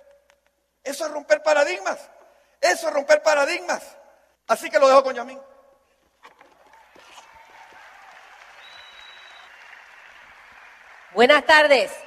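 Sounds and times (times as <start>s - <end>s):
audience applauding: 6.5s - 11.7s.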